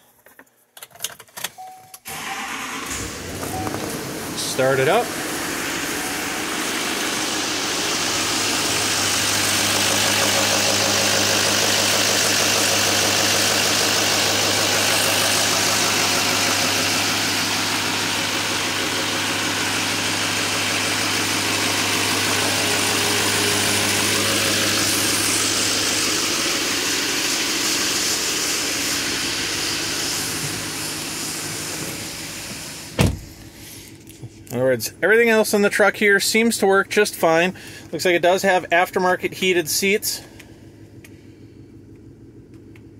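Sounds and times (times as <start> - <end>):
diesel truck engine idling: 2.2 - 42.9.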